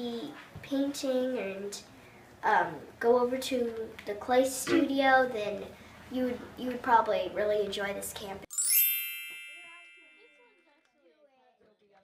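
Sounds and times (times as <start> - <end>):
metallic chime ringing: 8.5 - 10.6.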